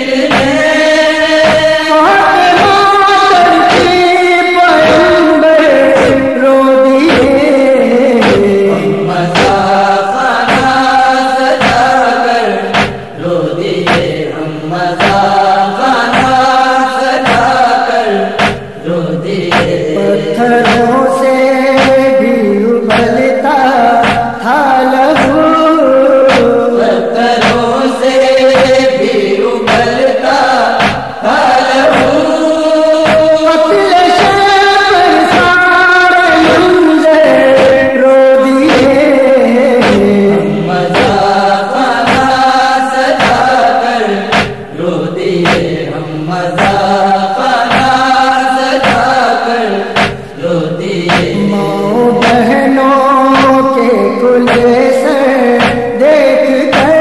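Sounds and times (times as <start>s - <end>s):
man chanting a lament: 0.0s - 57.0s
sharp percussive beat: 0.1s - 14.2s, 14.9s - 18.9s, 19.5s - 44.8s, 45.4s - 45.8s, 46.5s - 50.4s, 51.0s - 51.5s, 52.1s - 57.0s.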